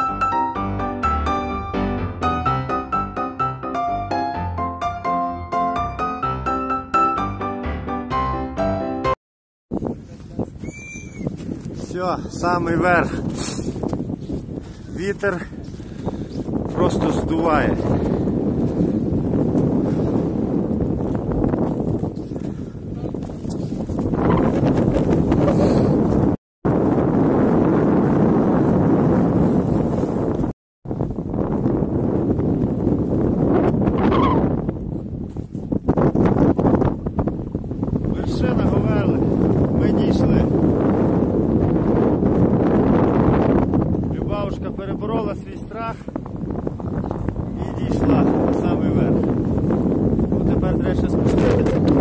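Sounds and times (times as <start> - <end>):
strong wind buffeting microphone: 9.7 - 52.0.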